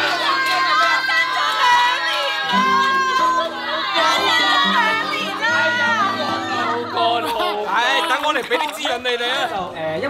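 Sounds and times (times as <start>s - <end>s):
women squealing and laughing: 2.5s - 8.8s.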